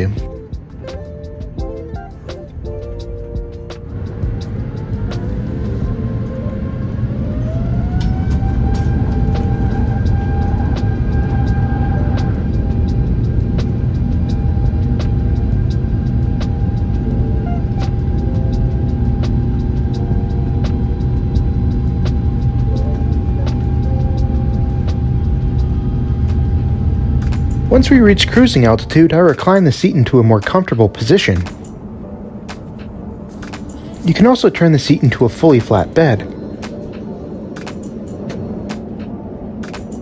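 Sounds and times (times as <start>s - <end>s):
jet engine whine: 0.0s - 40.0s
low rumble: 0.0s - 40.0s.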